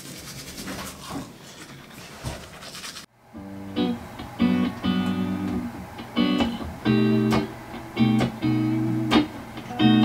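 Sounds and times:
toothbrush scrubbing teeth: 0.0 - 1.2, 2.5 - 3.1
guitar notes: 3.3 - 10.0.

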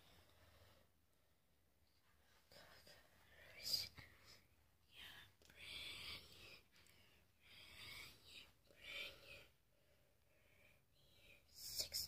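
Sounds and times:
faint whispering: 2.0 - 12.0.

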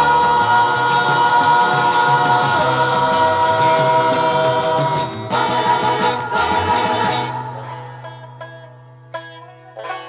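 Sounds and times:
male voices singing in harmony: 0.0 - 8.2
band with bass and light percussion: 0.0 - 10.0.

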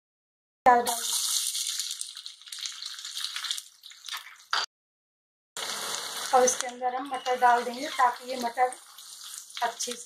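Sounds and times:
onions sizzling in hot oil: 0.8 - 4.2, 5.6 - 10.0.

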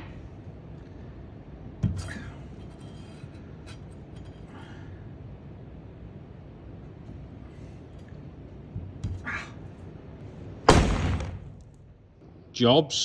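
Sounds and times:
faint low background noise: 0.0 - 13.0.

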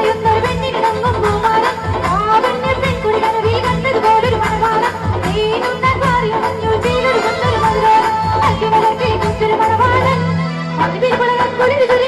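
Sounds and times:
drums beat: 0.0 - 10.2
keyboard: 0.0 - 12.0
woman singing into microphone: 0.0 - 12.0.

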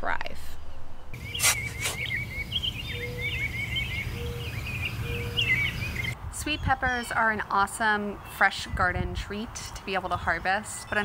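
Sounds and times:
birds chirping: 1.2 - 8.9, 9.8 - 11.0.

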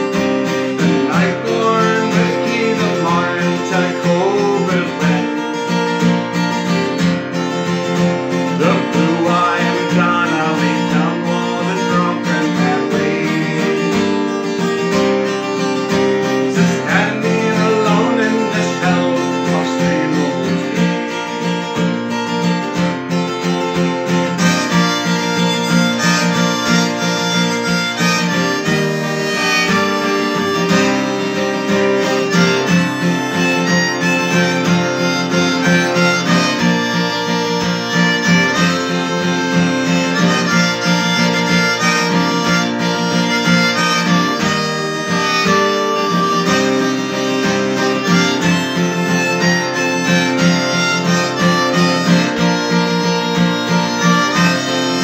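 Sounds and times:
harmonica playing a tune: 0.0 - 55.0
strummed acoustic guitar: 0.0 - 55.0.

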